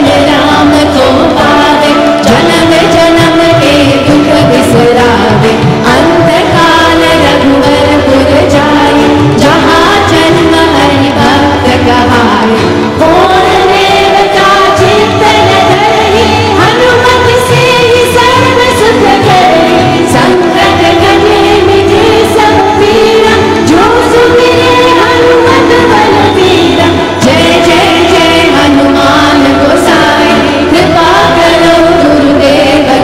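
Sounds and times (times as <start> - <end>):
group singing devotional song: 0.0 - 33.0
tabla: 0.0 - 33.0.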